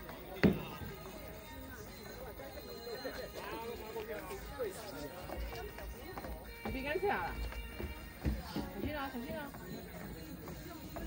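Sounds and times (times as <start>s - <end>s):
sneakers thudding on wooden deck: 0.4s - 1.0s, 5.3s - 11.0s
women chatting: 5.2s - 11.0s.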